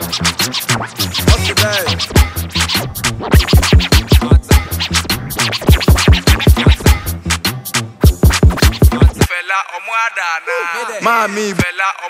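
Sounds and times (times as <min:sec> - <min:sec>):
record scratch sweeps: 0:00.0 - 0:09.3
loud dance music: 0:00.0 - 0:12.0.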